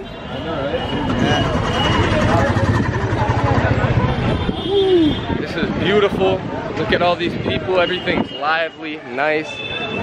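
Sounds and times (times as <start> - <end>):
vehicle engine running: 1.0 - 4.5.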